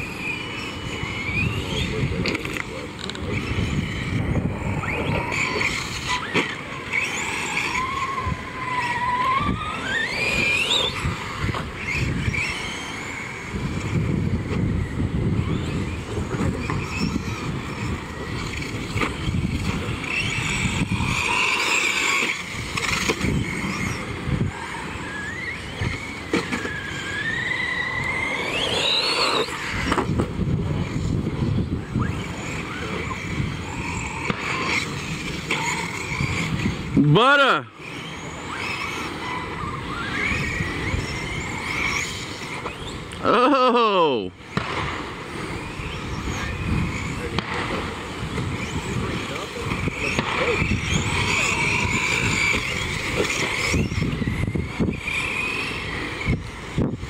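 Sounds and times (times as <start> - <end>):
tyres scrabbling on loose dirt: 0.0 - 43.3, 44.4 - 57.0
electric motor whine: 0.0 - 57.0.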